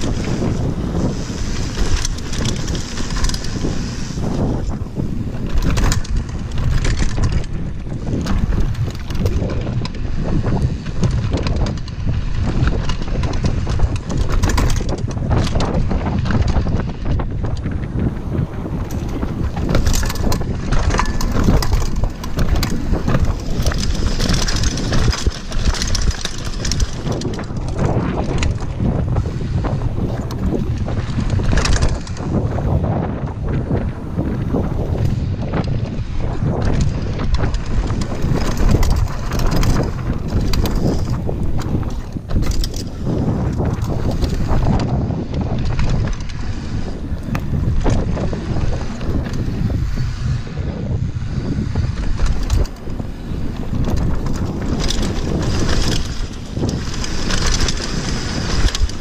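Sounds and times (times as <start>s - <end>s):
bike knocking over bumps: 0.0s - 33.8s
mountain bike rumble and rattle: 0.0s - 59.0s
wind buffeting microphone: 0.0s - 59.0s.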